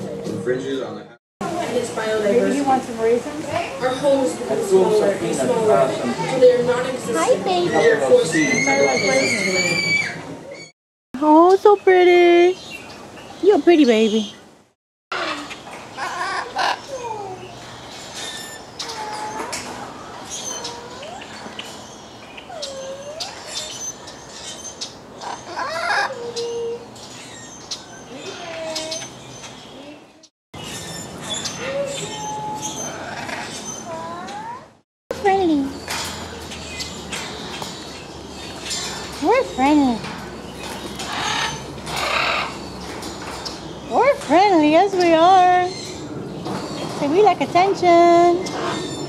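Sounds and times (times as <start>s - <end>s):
macaws calling: 7.2s - 10.7s, 15.1s - 17.5s, 18.1s - 26.6s, 40.6s - 46.0s
macaw squawking: 41.0s - 42.6s.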